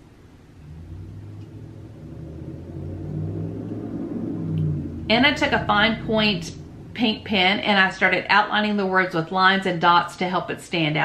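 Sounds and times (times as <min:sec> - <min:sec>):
truck rumble: 0:00.0 - 0:10.0
traffic going by: 0:00.0 - 0:10.2.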